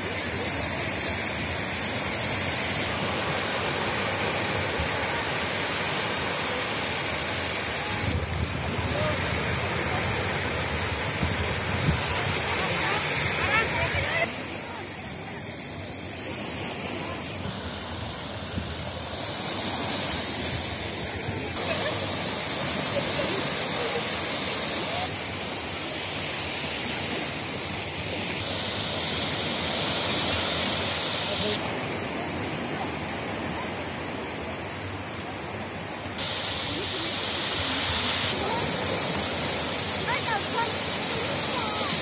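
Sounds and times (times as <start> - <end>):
waves washing up beach: 0.0 - 42.0.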